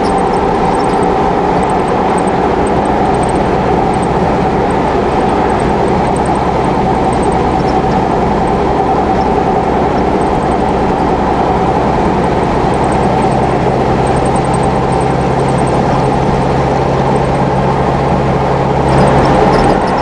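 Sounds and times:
car engine drone: 0:00.0 - 0:20.0.

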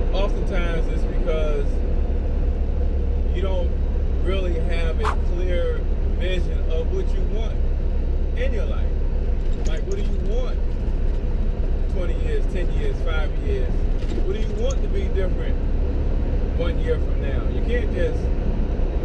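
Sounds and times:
truck engine and road rumble: 0:00.0 - 0:19.0
man talking: 0:00.1 - 0:01.8, 0:03.3 - 0:07.6, 0:08.4 - 0:08.9, 0:09.7 - 0:10.6, 0:11.8 - 0:15.6, 0:16.6 - 0:18.3.

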